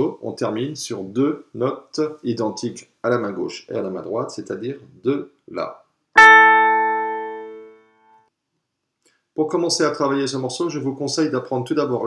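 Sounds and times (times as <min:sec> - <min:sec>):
digital piano notes ringing: 0:06.2 - 0:07.8.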